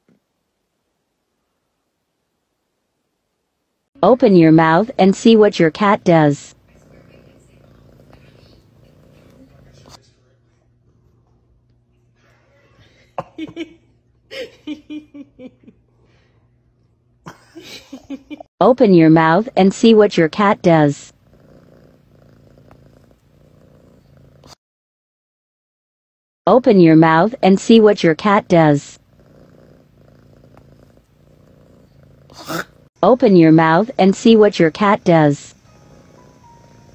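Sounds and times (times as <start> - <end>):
cat purring: 4.0 - 12.2, 19.1 - 24.6, 27.0 - 36.9.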